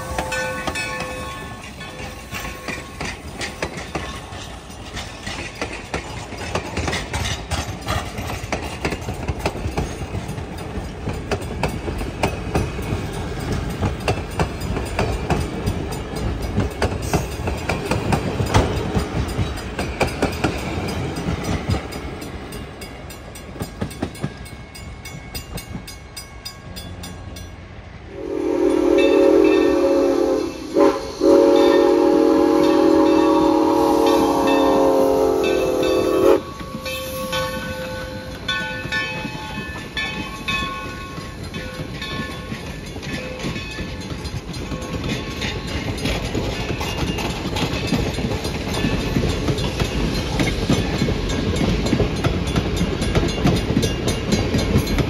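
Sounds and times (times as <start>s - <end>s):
steam locomotive whistle: 0.0s - 2.9s, 28.1s - 38.5s
train wheels clicking over rail joints: 0.0s - 27.6s, 29.2s - 55.0s.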